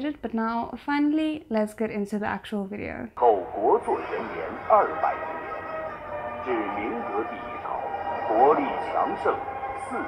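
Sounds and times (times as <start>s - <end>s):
voice-over narration: 3.2s - 5.7s, 6.4s - 10.0s.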